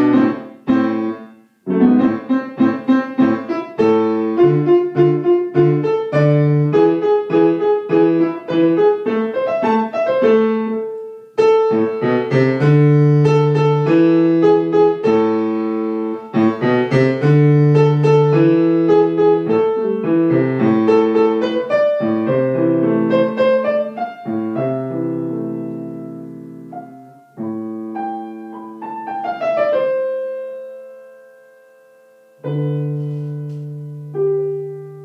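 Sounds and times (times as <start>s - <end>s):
acoustic piano: 0.0s - 35.0s.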